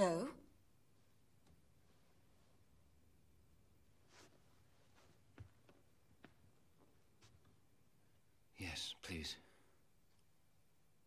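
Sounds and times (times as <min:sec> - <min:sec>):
faint rustling: 0:03.6 - 0:08.2.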